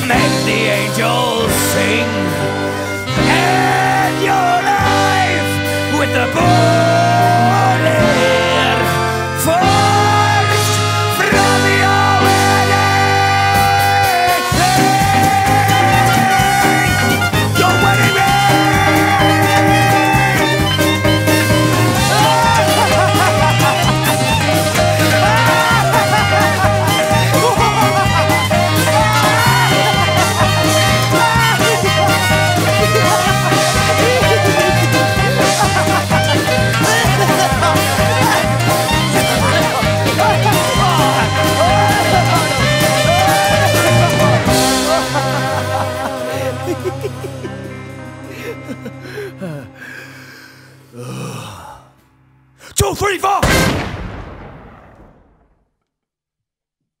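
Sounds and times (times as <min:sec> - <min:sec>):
swing band playing: 0:00.0 - 0:49.0.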